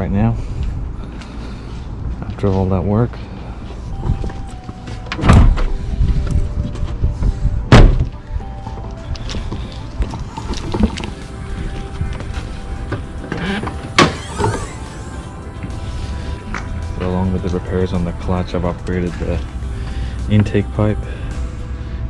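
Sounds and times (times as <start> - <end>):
background music: 3.3 - 22.0
car bonnet thunks: 5.1 - 5.8, 7.7 - 8.1, 12.9 - 14.8.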